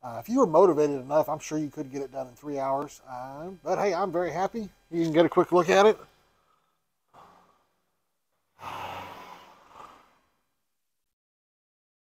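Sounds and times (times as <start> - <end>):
man breathing: 6.3 - 7.8, 8.6 - 10.4.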